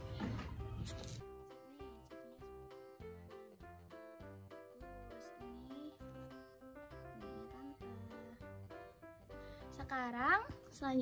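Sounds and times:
quiet instrumental music: 0.0 - 11.0.

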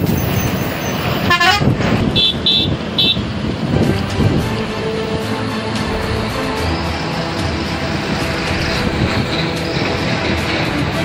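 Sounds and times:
floodwater rushing: 2.4 - 11.0
background music: 2.9 - 11.0.

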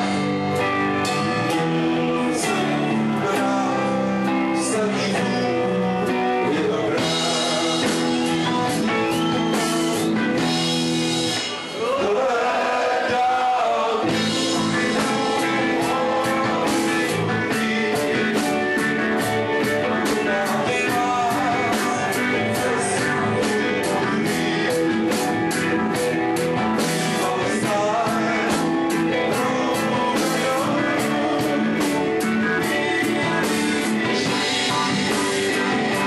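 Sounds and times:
steady drum beat: 0.0 - 5.5, 6.1 - 12.0, 14.0 - 36.0
guitar: 0.0 - 36.0
live rock band playing: 0.0 - 36.0.

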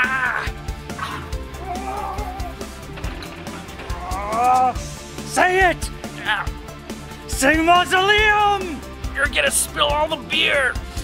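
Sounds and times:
man yelping: 0.0 - 0.6
music playing: 0.0 - 11.0.

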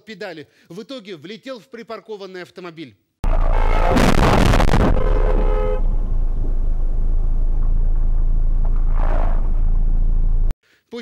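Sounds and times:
car horn: 3.3 - 6.0
car crash: 3.3 - 9.6
low engine rumble: 4.9 - 10.5.

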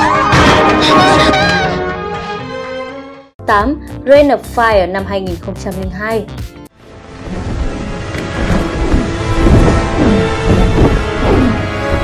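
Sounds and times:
music playing: 0.0 - 12.0
deep rush of flame: 7.1 - 12.0.

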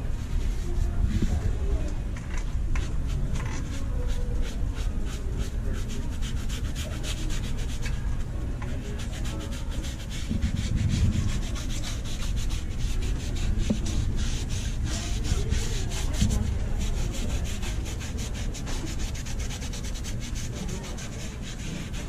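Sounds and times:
cleaning pad scrubbing sneaker: 2.8 - 8.0, 8.6 - 22.0.

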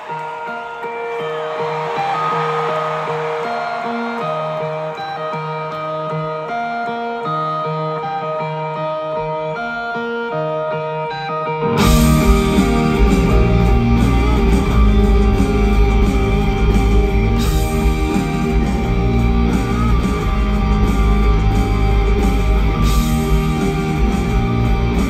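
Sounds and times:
clean electric guitar riff: 0.0 - 25.0
live rock band playing: 0.0 - 25.0.

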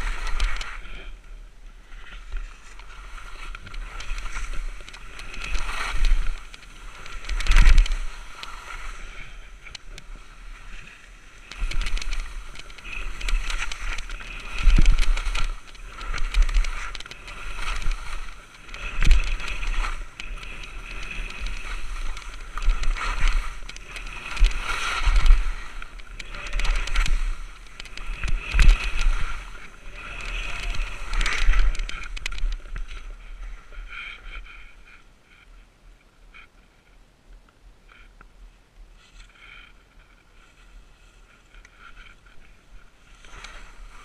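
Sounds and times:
skis scraping through snow: 0.0 - 35.0, 38.9 - 44.0.

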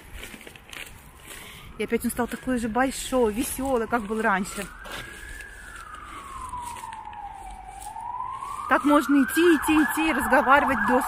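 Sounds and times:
emergency vehicle siren wailing: 0.8 - 11.0.

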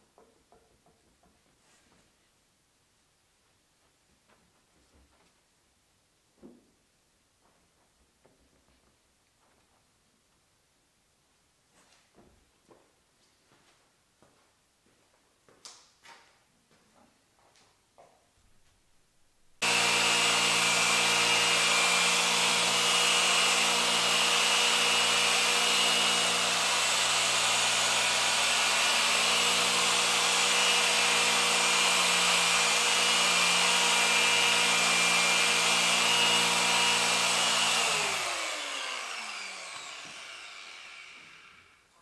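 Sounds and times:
electric polisher running: 19.6 - 41.8.

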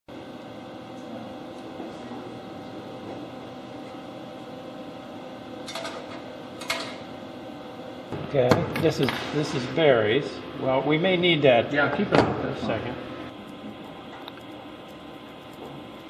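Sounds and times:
equipment and fans humming: 0.1 - 16.0.

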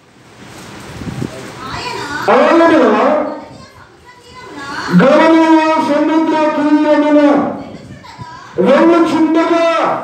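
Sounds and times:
man preaching through microphone: 2.3 - 3.4, 4.9 - 7.6, 8.6 - 10.0.

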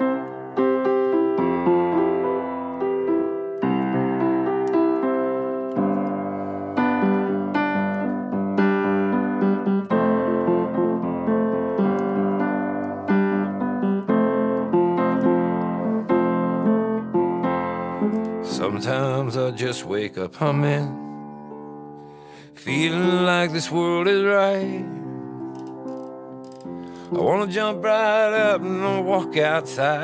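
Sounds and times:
solo piano playing chords: 0.0 - 30.0.

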